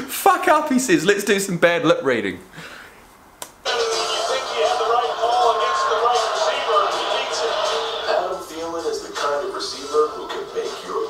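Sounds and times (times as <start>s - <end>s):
background music: 3.6s - 11.0s.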